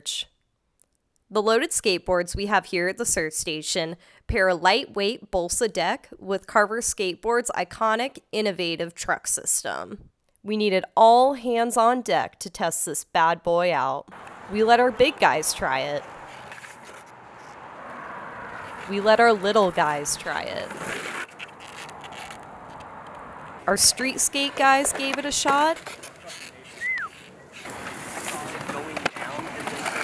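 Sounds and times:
people talking: 0.0s - 0.2s, 1.3s - 16.0s, 18.9s - 20.8s, 23.7s - 30.0s
road traffic passing: 14.1s - 30.0s
skateboard wheels rolling on concrete: 14.1s - 30.0s.

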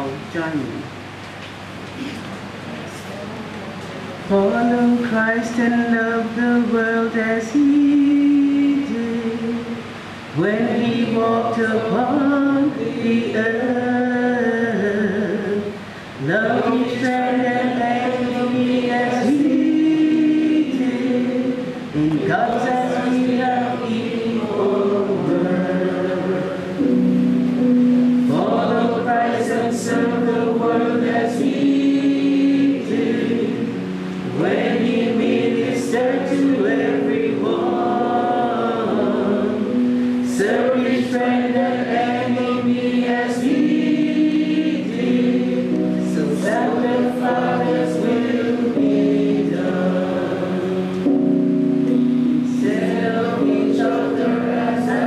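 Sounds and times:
slow hymn singing: 4.0s - 55.0s.

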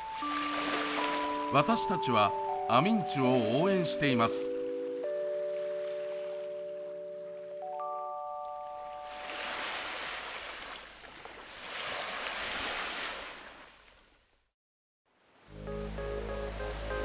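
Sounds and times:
waves washing in: 0.0s - 2.4s, 8.9s - 13.8s
bell-like mallet jingle: 0.0s - 9.3s.

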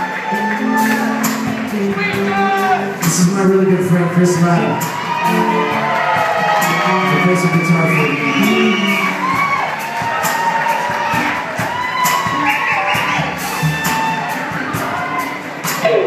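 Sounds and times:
blues band playing: 0.0s - 16.0s
crowd cheering and whooping: 0.0s - 16.0s.

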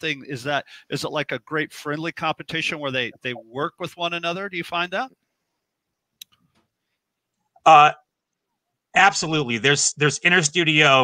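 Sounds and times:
person speaking: 0.0s - 5.2s, 7.6s - 8.0s.

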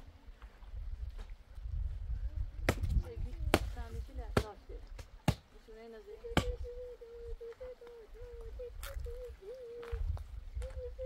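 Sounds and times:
voices talking: 2.8s - 10.0s.

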